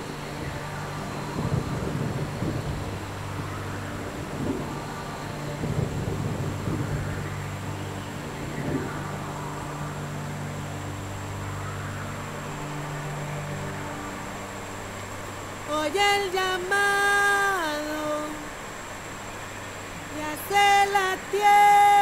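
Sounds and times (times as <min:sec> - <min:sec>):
deep rumbling swells: 0:00.0 - 0:16.0
low droning hum: 0:00.0 - 0:21.5
faint high whine: 0:00.0 - 0:22.0.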